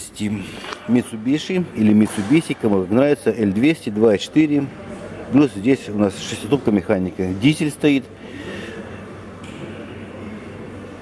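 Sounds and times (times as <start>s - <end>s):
air conditioning hum and hiss: 0.0s - 11.0s.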